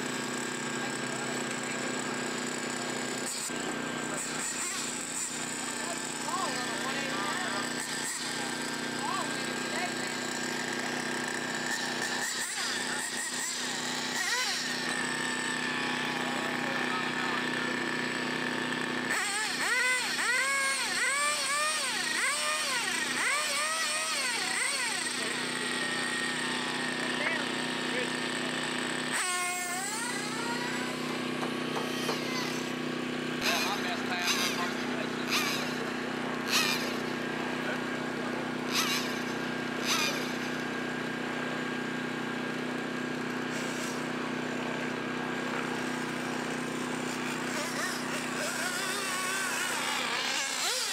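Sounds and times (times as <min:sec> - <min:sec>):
rc car motor revving: 0:00.0 - 0:50.9.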